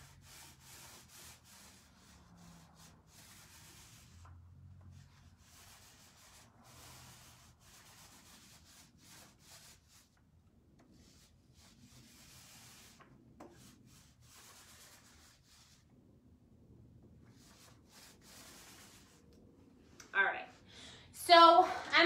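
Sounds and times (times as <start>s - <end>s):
foam roller rubbing on wood: 0.0s - 10.2s, 11.0s - 15.8s, 17.3s - 19.2s.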